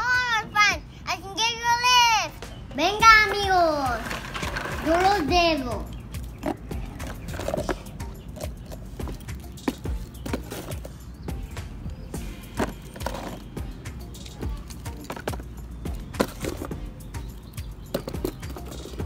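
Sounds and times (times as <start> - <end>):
plastic toys knocking on dirt: 2.4 - 13.6, 14.3 - 19.0.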